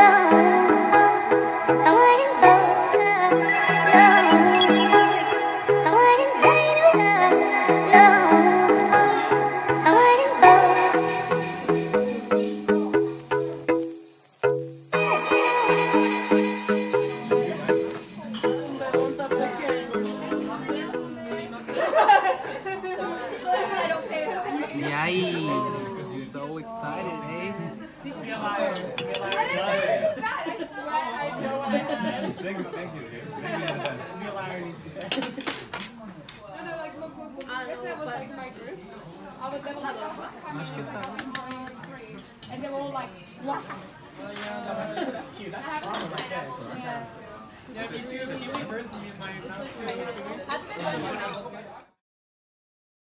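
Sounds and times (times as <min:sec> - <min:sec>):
people chattering: 0:00.0 - 0:14.1, 0:14.9 - 0:52.0.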